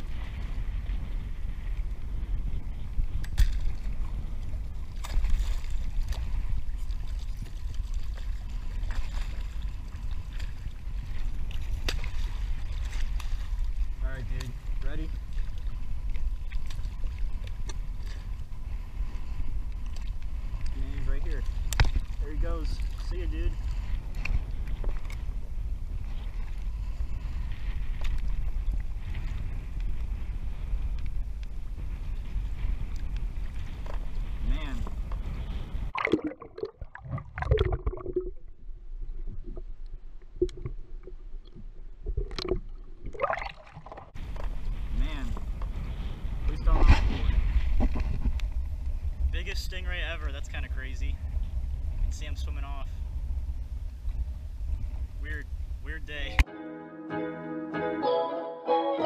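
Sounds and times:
water sloshing against kayak: 0:00.0 - 0:52.6
wind over microphone: 0:00.0 - 0:56.5
water splashing: 0:03.3 - 0:13.9, 0:35.8 - 0:44.7.

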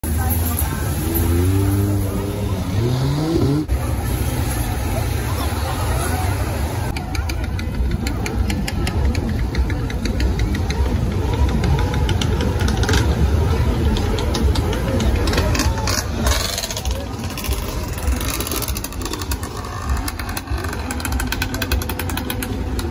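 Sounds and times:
crowd voices: 0:00.0 - 0:22.9
vehicle engines: 0:00.0 - 0:22.9
engine revving: 0:00.2 - 0:03.8.

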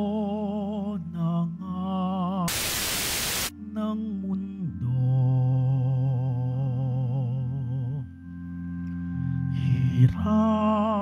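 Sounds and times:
burst of static noise: 0:02.5 - 0:03.5.

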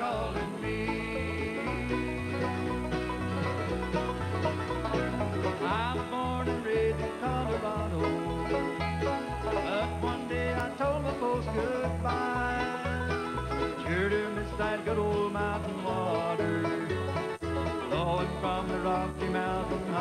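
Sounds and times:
bluegrass band playing: 0:00.0 - 0:20.0.

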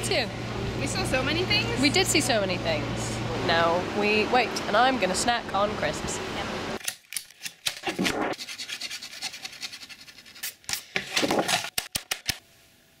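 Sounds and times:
hand rubbing on paper: 0:08.3 - 0:10.6.

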